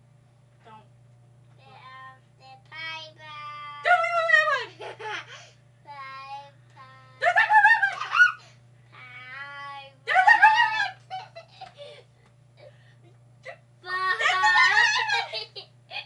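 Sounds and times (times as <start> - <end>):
boy squealing with laughter: 7.2 - 8.4, 14.2 - 16.0.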